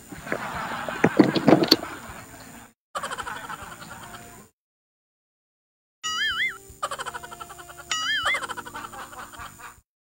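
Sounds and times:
background music: 6.6 - 9.7.

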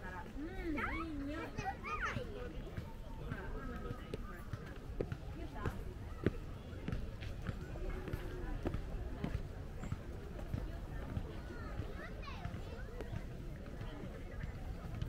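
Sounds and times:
people talking: 0.0 - 15.0
footsteps on concrete steps: 1.3 - 15.0.

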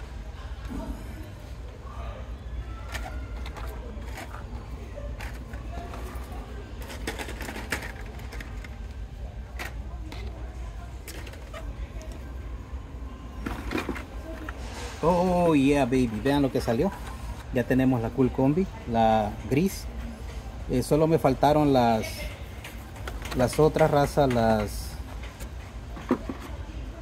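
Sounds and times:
faint indistinct voices: 0.0 - 27.0
handling clicks and knocks: 2.8 - 10.4, 22.6 - 26.6.

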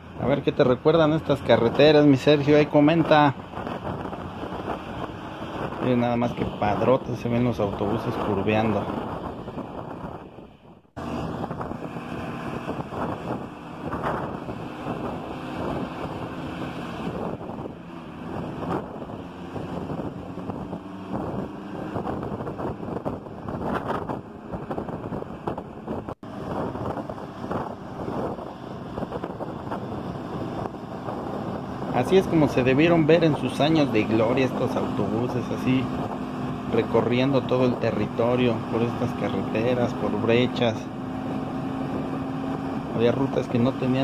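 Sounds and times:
car road noise: 0.0 - 44.0
diesel bus engines: 0.0 - 44.0
wind buffeting microphone: 0.0 - 44.0.

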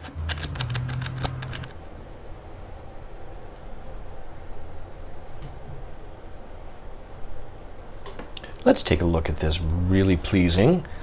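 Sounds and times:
low hum: 0.0 - 11.0
low room noise: 0.0 - 11.0.

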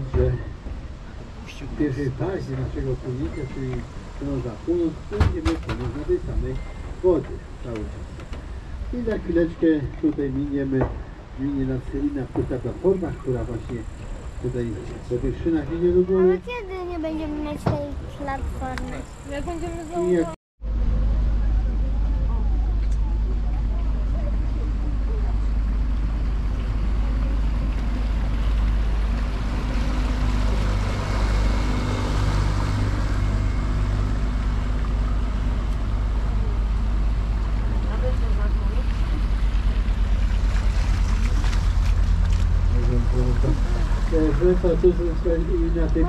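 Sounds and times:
boat engine low rumble: 0.0 - 46.0.

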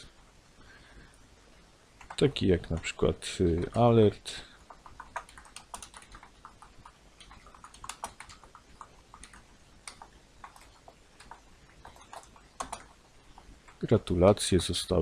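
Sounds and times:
computer keyboard typing: 2.0 - 3.0, 3.6 - 3.9, 4.5 - 13.8.

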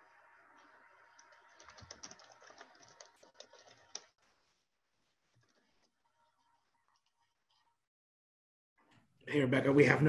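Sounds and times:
typing on computer keyboard: 1.2 - 4.1.

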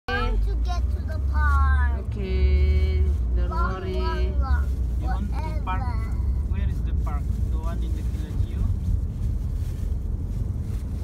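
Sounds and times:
car cabin rumble: 0.1 - 11.0.

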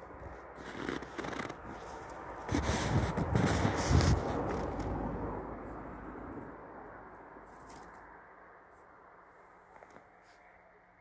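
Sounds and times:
crunching in packed snow: 0.0 - 5.0.

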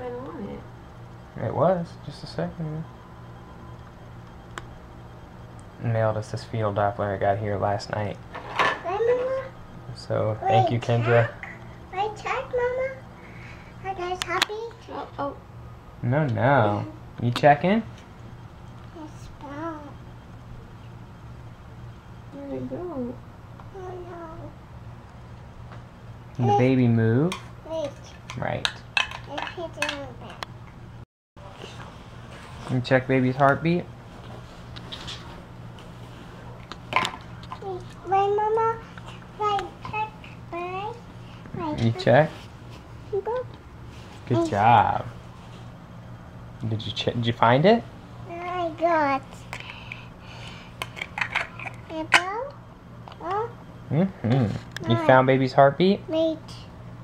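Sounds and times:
faint low hum: 0.0 - 57.0.

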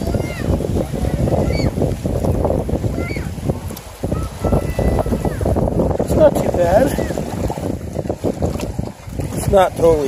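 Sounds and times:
small waves washing: 0.0 - 10.0
wind buffeting microphone: 0.0 - 10.0.

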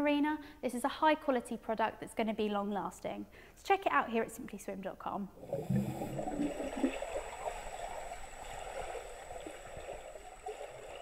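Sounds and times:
water rushing underwater: 5.4 - 11.0.

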